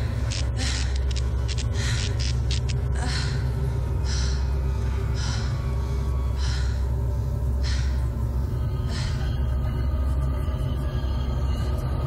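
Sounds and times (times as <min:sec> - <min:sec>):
heavy rhythmic breathing: 0:00.0 - 0:12.0
low droning rumble: 0:00.0 - 0:12.0.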